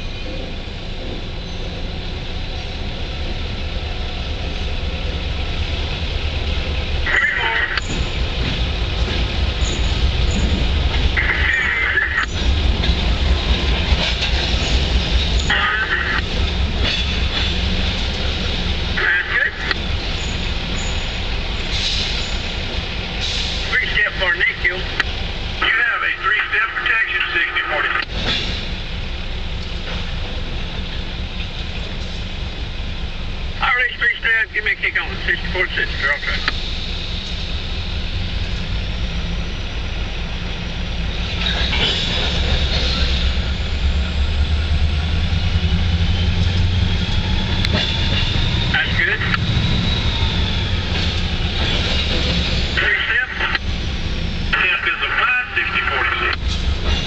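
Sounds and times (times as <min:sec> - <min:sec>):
diesel locomotive rumble: 0:00.0 - 0:57.0
train cars rolling over rails: 0:00.0 - 0:57.0.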